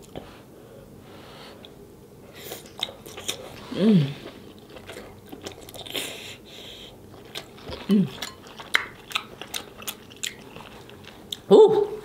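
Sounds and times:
wet chewing and smacking: 0:02.4 - 0:06.2, 0:07.0 - 0:11.5
person humming mm: 0:03.7 - 0:04.3.

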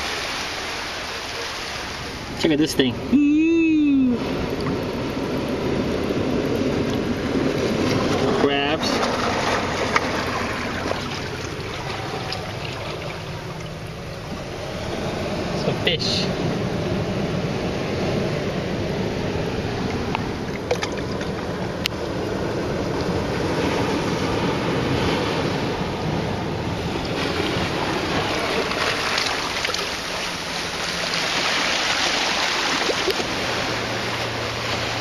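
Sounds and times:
seawater washing over rocks: 0:00.0 - 0:03.0, 0:06.0 - 0:14.4, 0:19.6 - 0:35.0.

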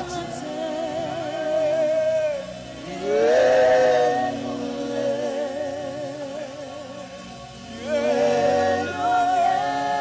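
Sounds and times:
worship singing: 0:00.0 - 0:10.0.

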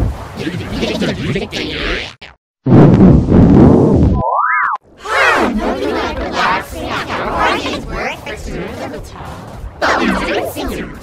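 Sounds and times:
pitch-shifted voices sweeping down: 0:03.6 - 0:09.2
cartoon boing: 0:04.2 - 0:04.8.

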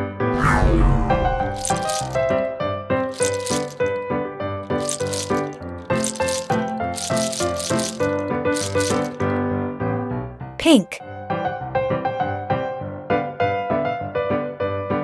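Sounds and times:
candies clattering: 0:01.5 - 0:02.4, 0:03.1 - 0:04.0, 0:04.7 - 0:09.3.

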